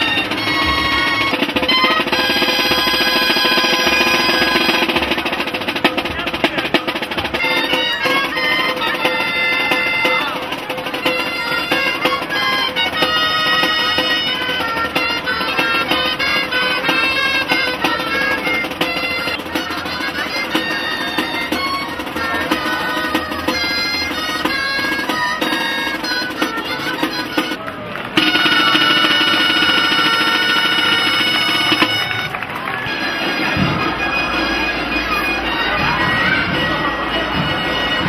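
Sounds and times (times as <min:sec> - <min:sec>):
drum: 0:00.0 - 0:32.4
reedy pipes playing melody: 0:00.0 - 0:38.0.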